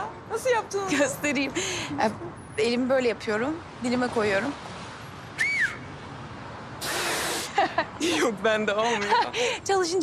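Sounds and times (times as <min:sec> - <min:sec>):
two-finger whistle: 0:05.4 - 0:05.8
breathy rush of air: 0:06.8 - 0:07.7.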